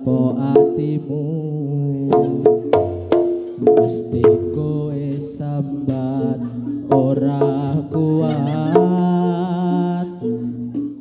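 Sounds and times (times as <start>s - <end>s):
person singing wavering notes: 0.0s - 11.0s
sustained gamelan tones: 2.0s - 11.0s.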